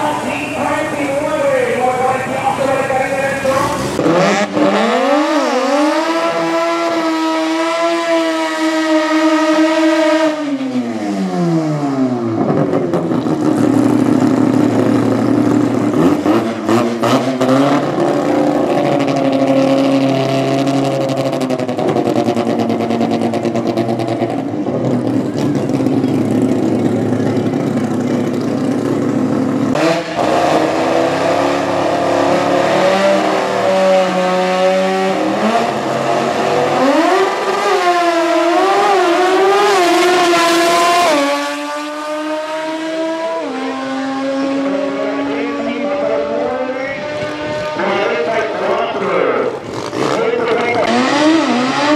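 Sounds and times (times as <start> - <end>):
rotary engine idling and revving: 0.0 - 51.9.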